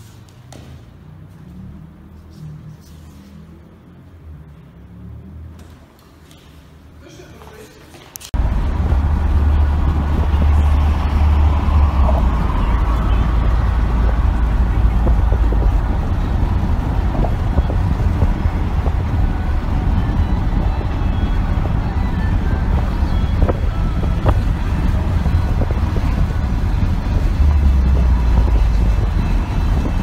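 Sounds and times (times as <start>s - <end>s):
car cabin road rumble: 8.2s - 30.0s.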